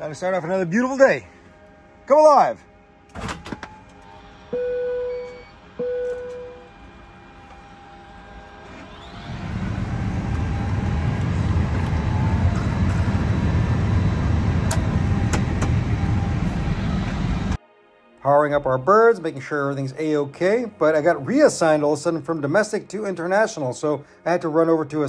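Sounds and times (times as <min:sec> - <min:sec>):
low rushing rumble of aircraft systems: 0:03.1 - 0:17.6
short beeps: 0:04.5 - 0:06.7.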